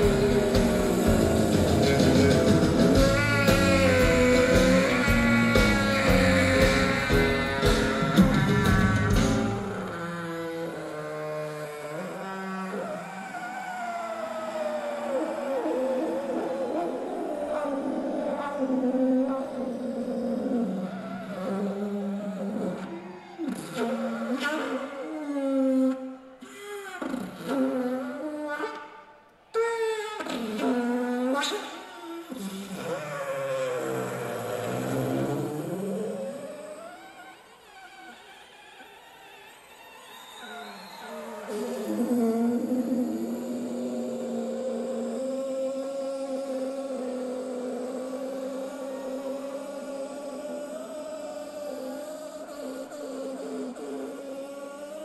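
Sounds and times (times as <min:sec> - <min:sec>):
loud rock band music: 0:00.0 - 0:09.7
vacuum cleaner pitched wail: 0:00.0 - 0:27.2, 0:27.8 - 0:55.0.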